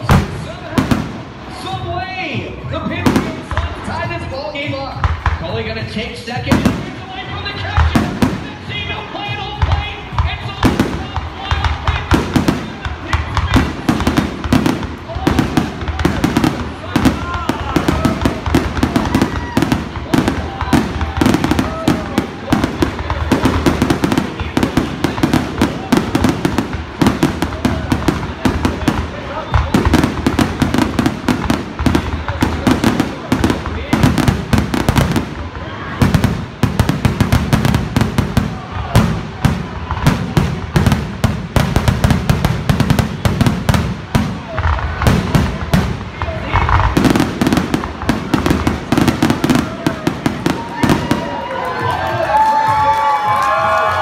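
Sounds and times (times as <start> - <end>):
fireworks bangs and crackles: 0.0 - 54.0.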